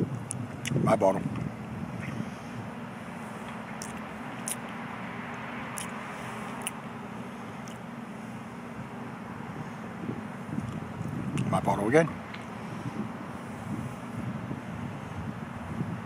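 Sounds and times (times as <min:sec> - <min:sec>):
distant road traffic drone: 0:00.0 - 0:16.0.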